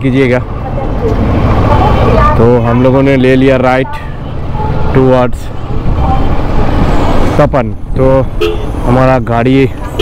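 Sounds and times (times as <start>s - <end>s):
road and town traffic rumble: 0.0s - 10.0s.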